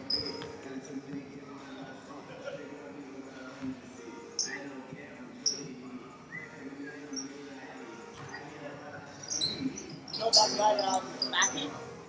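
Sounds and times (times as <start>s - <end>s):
sneaker squeak on hardwood floor: 0.0s - 0.6s, 9.2s - 11.6s
faint voices: 0.0s - 12.0s.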